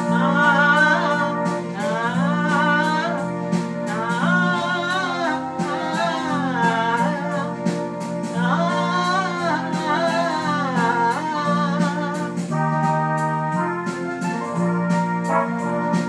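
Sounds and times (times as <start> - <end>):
woman singing: 0.0 - 12.6
electronic keyboard chords and beat: 0.0 - 16.0.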